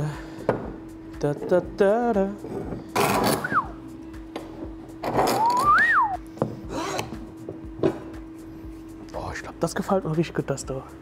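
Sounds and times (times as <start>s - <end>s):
background music: 0.0s - 11.0s
scraping slide with whistling glide: 5.2s - 6.2s.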